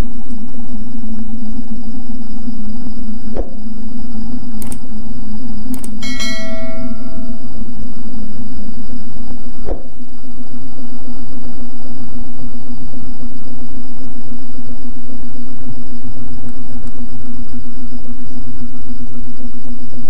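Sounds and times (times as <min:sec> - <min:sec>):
loud low hum: 0:00.0 - 0:20.0
short click: 0:04.6 - 0:04.8
notification bell chime: 0:06.0 - 0:07.3.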